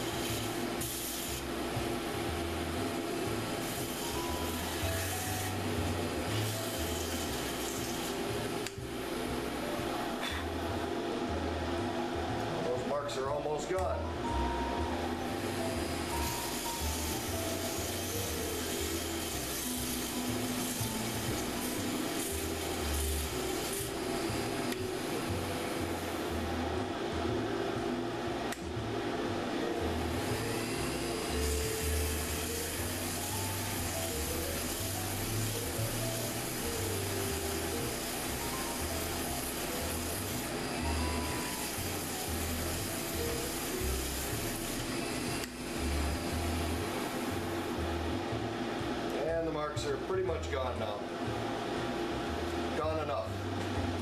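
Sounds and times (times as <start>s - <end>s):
sandpaper rubbing on spinning wood: 0.0s - 1.7s, 3.3s - 8.6s, 15.6s - 26.4s, 30.1s - 47.5s
lathe motor running: 0.0s - 54.0s.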